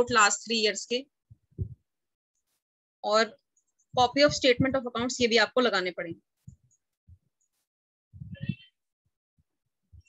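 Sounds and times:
faint low thuds: 0:01.3 - 0:01.8, 0:04.0 - 0:05.4.

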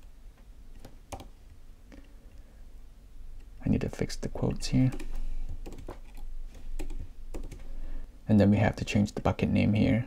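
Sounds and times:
computer keyboard keystrokes: 0:00.8 - 0:01.3, 0:04.8 - 0:07.7.

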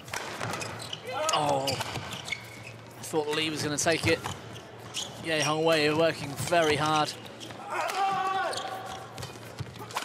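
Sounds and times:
racket hitting shuttlecock: 0:00.0 - 0:00.8
footwork on court: 0:07.4 - 0:10.0.

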